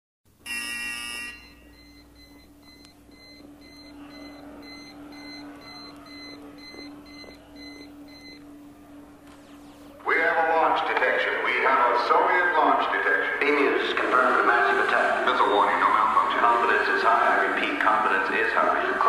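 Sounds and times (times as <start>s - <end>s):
steady low hum: 0.3s - 19.0s
harsh electronic buzzer: 0.4s - 2.4s.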